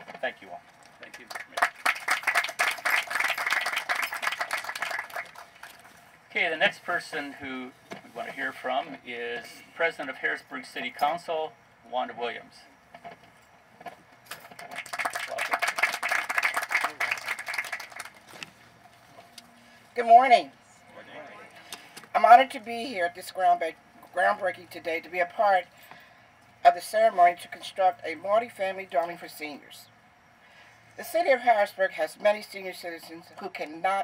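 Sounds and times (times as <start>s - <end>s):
audience applauding: 1.1s - 5.8s, 14.6s - 18.4s.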